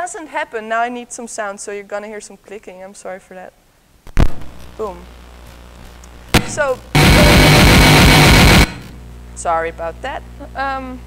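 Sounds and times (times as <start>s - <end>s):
harsh noise through loudspeakers: 6.3s - 9.0s.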